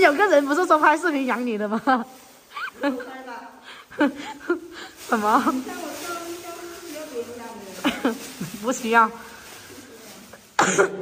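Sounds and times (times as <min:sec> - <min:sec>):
person coughing: 0:10.6 - 0:11.0.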